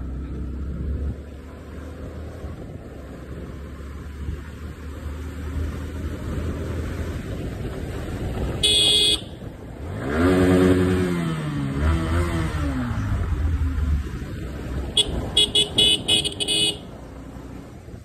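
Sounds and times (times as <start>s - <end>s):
motorcycle engine revving: 0.0s - 18.0s
horn honking: 8.6s - 9.5s, 14.9s - 17.0s.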